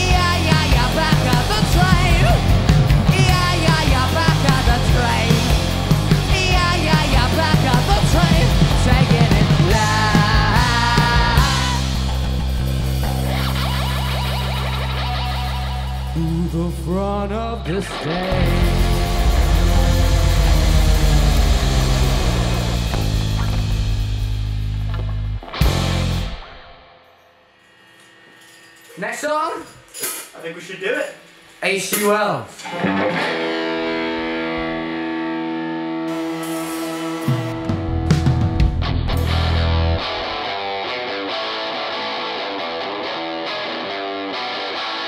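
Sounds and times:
rising guitar slides: 0.0s - 26.8s, 32.6s - 45.0s
bending guitar note: 13.0s - 26.5s, 32.6s - 45.0s
rock band ringing chord: 18.2s - 26.6s.

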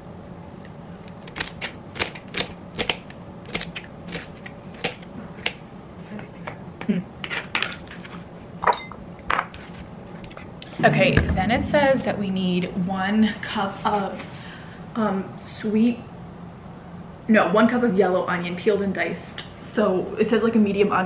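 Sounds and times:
louder knocks: 10.8s - 12.2s.

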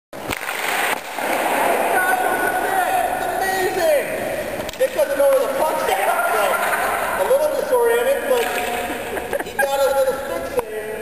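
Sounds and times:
hockey stick slapping puck: 0.2s - 1.6s.

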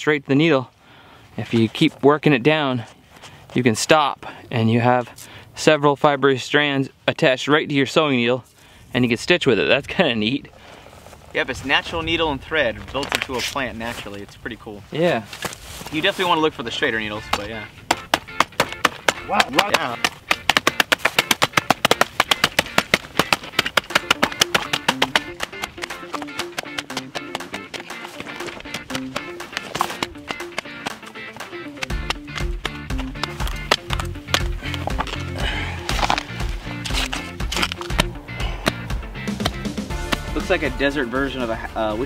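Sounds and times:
hatchet chopping leaves: 17.3s - 26.2s, 31.8s - 40.3s
background music with beat: 17.3s - 42.0s.

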